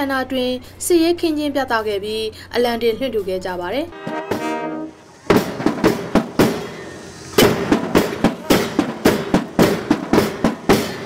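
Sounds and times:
sharp bangs: 4.0 - 11.0.

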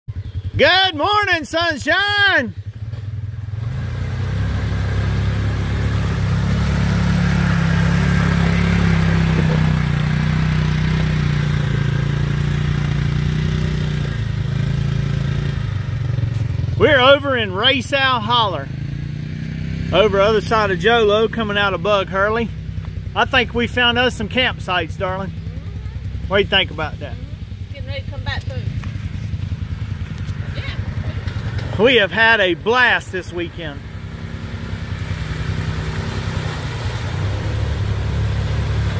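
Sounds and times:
utility vehicle engine running: 0.1 - 38.9
water splashing around wheels: 0.1 - 38.9
woman speaking: 27.2 - 28.8, 30.4 - 31.2.

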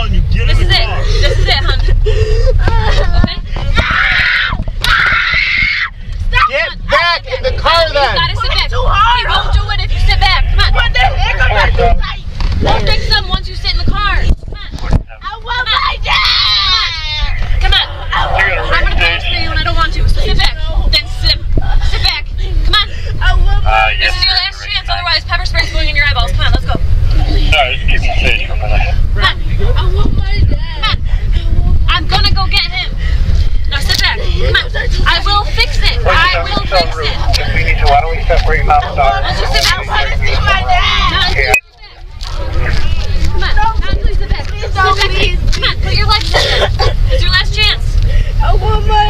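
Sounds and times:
low rumble: 0.0 - 49.0
girl sobbing: 0.8 - 3.6, 46.2 - 47.4
girl screaming: 3.8 - 6.0.

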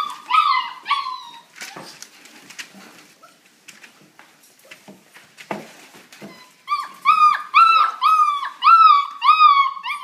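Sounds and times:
puppy whining: 0.0 - 2.2, 2.8 - 3.6, 6.1 - 10.0.

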